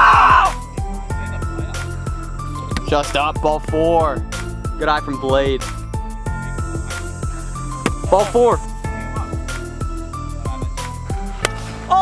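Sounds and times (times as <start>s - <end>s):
background music with deep drums: 0.0s - 12.0s
plastic bat hitting ball: 7.8s - 8.1s, 11.4s - 11.6s.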